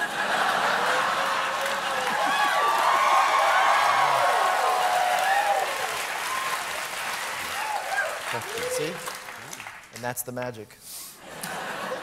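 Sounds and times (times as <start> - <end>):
audience applauding: 0.0 - 10.2.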